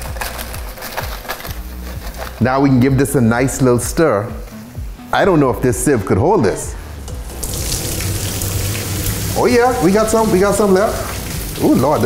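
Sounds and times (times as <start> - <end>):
hot liquid pouring into colander: 7.0 - 12.0
water splashing into sink: 7.0 - 12.0.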